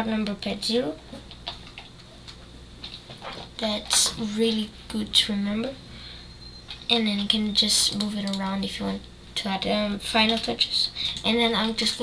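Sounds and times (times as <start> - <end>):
low steady background hum: 0.0 - 12.0
computer keyboard clicks: 6.7 - 8.5.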